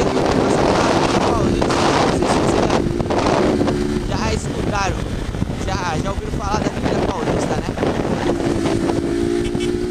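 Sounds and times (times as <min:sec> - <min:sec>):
motorcycle engine and road noise: 0:00.0 - 0:09.9
wind on microphone: 0:00.0 - 0:09.9.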